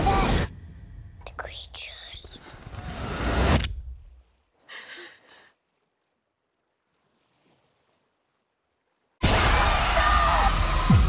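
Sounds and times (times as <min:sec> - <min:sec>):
faint whispering: 0:01.2 - 0:02.9.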